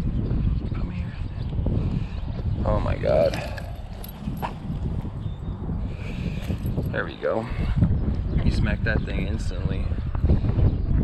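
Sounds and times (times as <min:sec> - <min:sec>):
wind and rubbing on microphone: 0:00.0 - 0:11.0.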